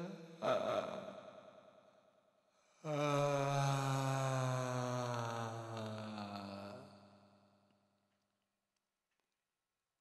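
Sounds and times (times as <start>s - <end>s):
deep voice chanting: 0.0s - 1.1s, 2.8s - 6.9s.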